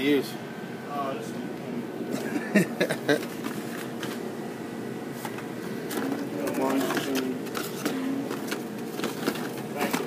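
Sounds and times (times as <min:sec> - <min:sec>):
store background hum: 0:00.0 - 0:10.0
people talking: 0:06.0 - 0:08.3, 0:09.8 - 0:10.0.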